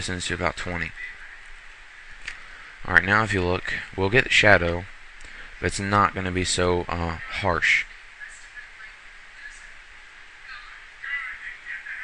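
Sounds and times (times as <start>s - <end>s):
background hiss: 0.0s - 12.0s
person speaking: 0.0s - 12.0s.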